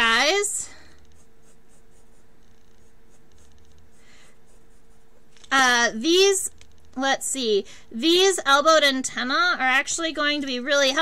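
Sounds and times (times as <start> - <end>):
low steady hum: 0.0 - 11.0
pen scratching on paper: 1.1 - 5.5.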